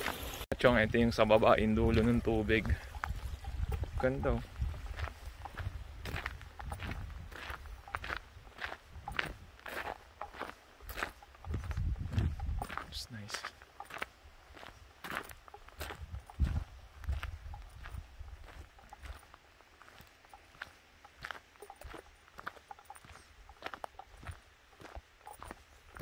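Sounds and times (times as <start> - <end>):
footsteps crunching on gravel: 0.0 - 26.0.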